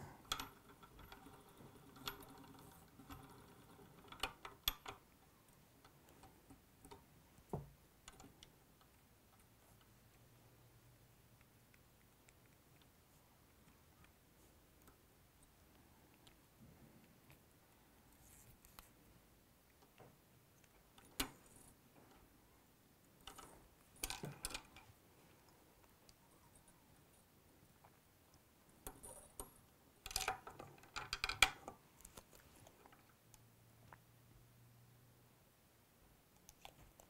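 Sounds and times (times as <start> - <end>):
light clicking and rustling: 11.2 - 19.1, 23.0 - 34.0.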